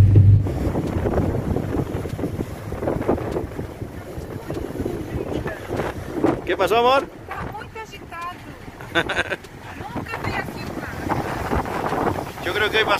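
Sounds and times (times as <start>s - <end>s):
low car engine hum: 0.0s - 12.6s
rough sea breaking against wall: 0.0s - 12.9s
wind buffeting microphone: 0.0s - 12.9s.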